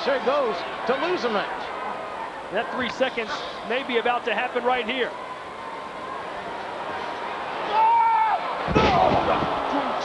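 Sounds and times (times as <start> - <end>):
arena crowd noise: 0.0 - 10.0
long drawn-out shout: 7.6 - 10.0
body slamming onto wrestling ring: 8.7 - 9.5.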